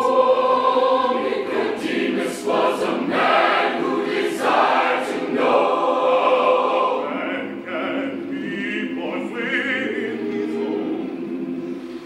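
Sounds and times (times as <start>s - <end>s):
choir singing in harmony: 0.0s - 12.0s.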